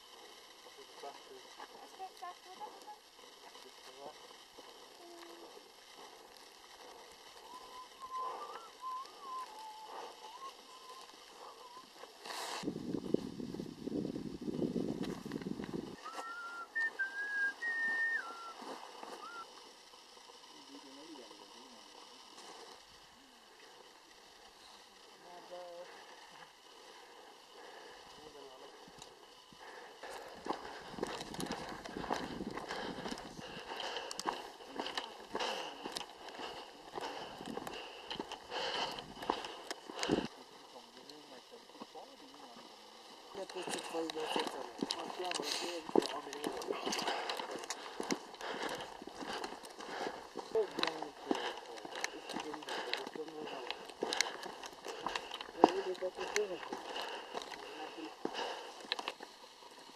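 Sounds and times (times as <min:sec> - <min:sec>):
wind buffeting microphone: 0:12.6 - 0:16.0
footsteps crunching on stony ground: 0:28.2 - 0:40.4, 0:43.3 - 0:59.9.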